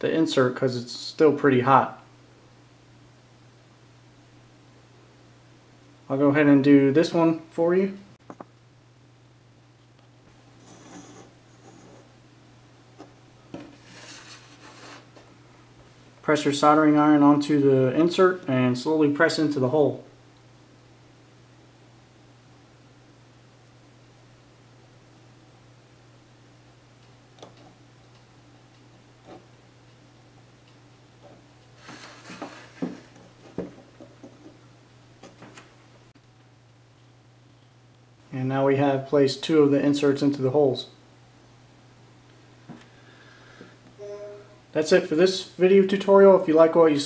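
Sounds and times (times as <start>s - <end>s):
small parts rubbing and scraping: 10.6s - 12.1s, 13.6s - 15.3s, 31.8s - 33.4s
rustles and sharp knocks: 31.2s - 34.6s.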